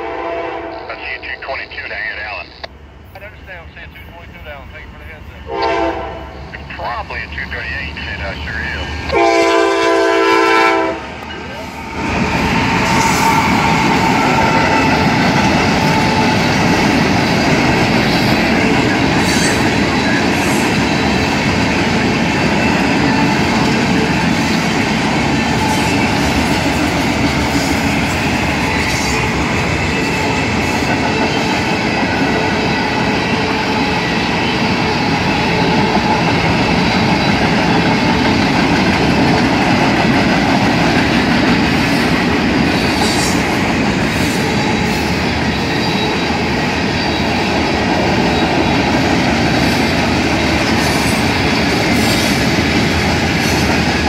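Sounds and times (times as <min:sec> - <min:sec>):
diesel locomotive passing: 0:00.0 - 0:54.0.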